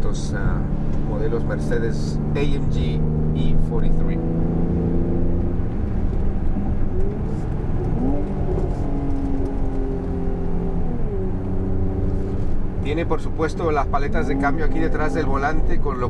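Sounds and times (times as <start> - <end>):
car engine drone from cabin: 0.0 - 16.0.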